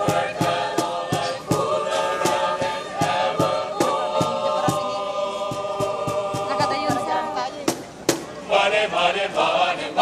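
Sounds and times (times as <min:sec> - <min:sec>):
voices singing in chorus: 0:00.0 - 0:10.0.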